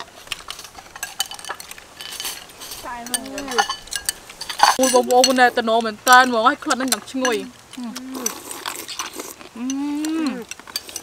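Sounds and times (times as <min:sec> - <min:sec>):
spoons clinking against bowls: 0:00.3 - 0:07.5, 0:08.2 - 0:11.0.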